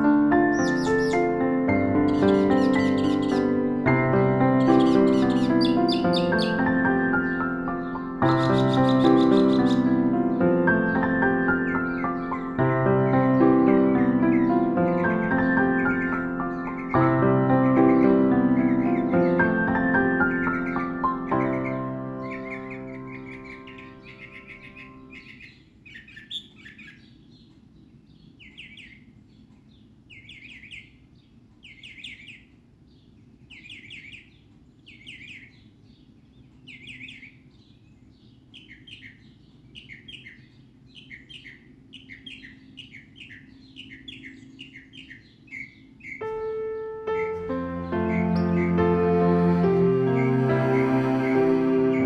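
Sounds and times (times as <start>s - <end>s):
soft piano music: 0.0s - 25.5s, 46.0s - 52.0s
songbird singing: 0.0s - 52.0s.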